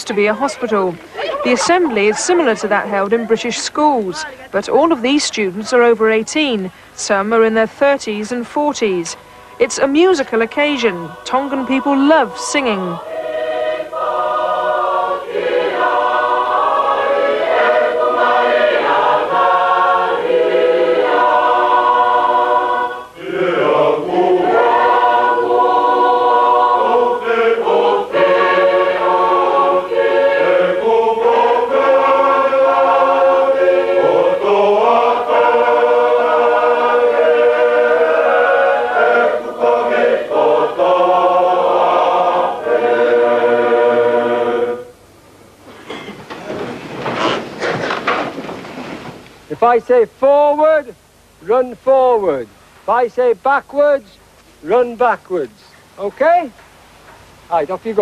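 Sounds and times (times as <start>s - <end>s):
large choir singing: 0.0s - 3.8s, 9.5s - 45.0s.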